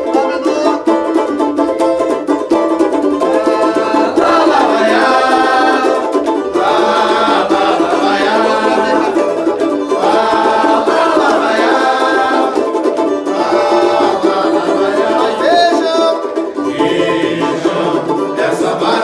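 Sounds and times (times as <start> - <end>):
strummed cavaquinhos: 0.0 - 19.0
group singing samba: 3.3 - 19.0.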